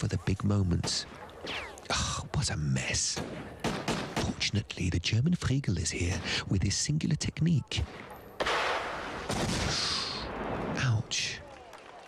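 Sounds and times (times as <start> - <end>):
large explosion: 8.4 - 10.8.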